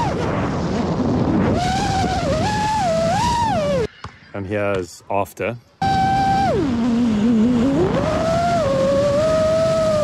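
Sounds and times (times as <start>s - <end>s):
drone motors whining: 0.0s - 4.0s, 5.8s - 10.0s
steady rush of noise: 0.0s - 10.0s.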